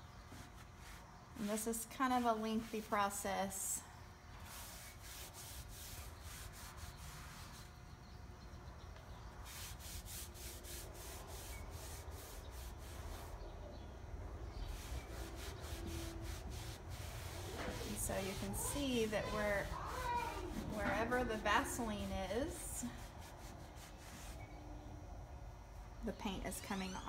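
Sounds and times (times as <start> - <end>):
rag wiping a wooden door: 4.4 - 7.8, 9.4 - 13.5, 14.5 - 24.4.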